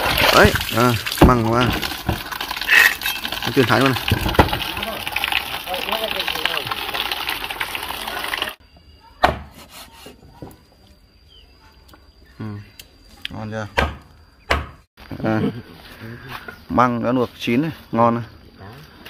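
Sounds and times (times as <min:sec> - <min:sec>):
water splashing into plastic basin: 0:00.0 - 0:08.6
voices: 0:04.7 - 0:07.0
cleaver chopping on wooden block: 0:13.8 - 0:14.8.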